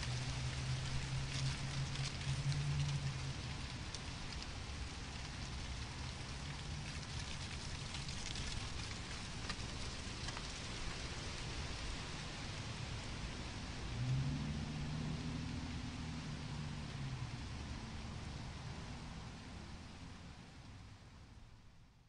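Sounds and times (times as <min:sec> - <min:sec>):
light ticks and patter: 0:00.0 - 0:21.9.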